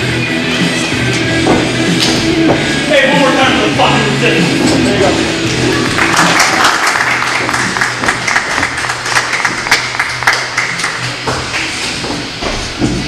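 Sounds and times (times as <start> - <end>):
music playing: 0.0 - 13.0
crowd clapping and cheering: 5.4 - 11.8.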